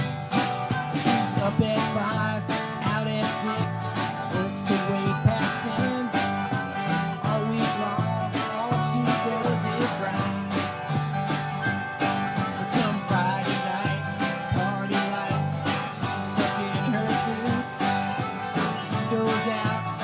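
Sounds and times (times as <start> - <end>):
country band playing: 0.0 - 20.0
fiddle melody: 0.0 - 20.0
harmonica melody: 0.0 - 20.0.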